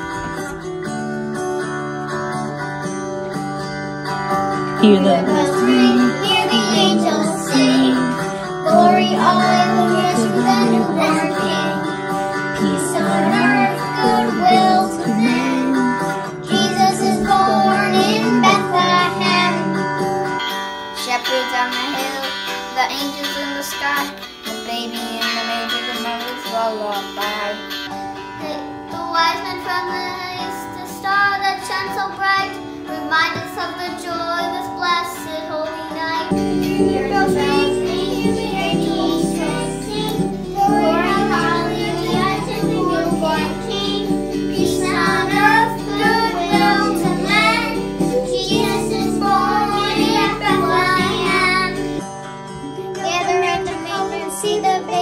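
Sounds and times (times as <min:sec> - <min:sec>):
instrumental backing music: 0:00.0 - 0:55.0
children singing: 0:04.8 - 0:20.0, 0:36.1 - 0:52.0.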